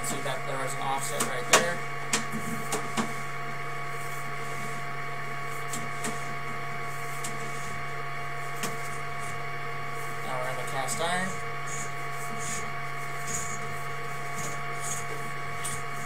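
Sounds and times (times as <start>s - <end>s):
camera equipment humming and whining: 0.0s - 16.0s.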